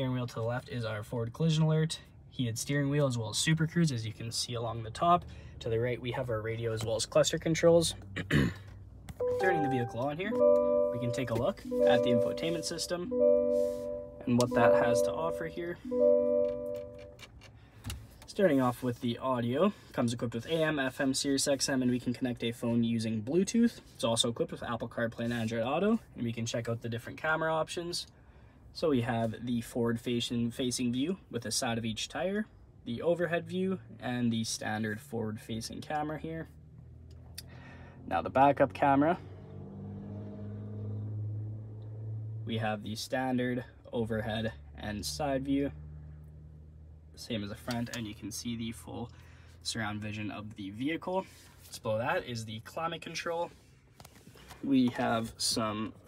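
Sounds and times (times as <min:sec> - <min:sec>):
electronic chord: 0:09.2 - 0:17.1.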